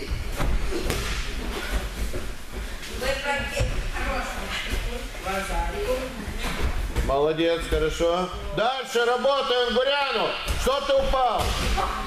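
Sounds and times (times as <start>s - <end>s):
bodies thudding on mats: 0.0s - 4.1s.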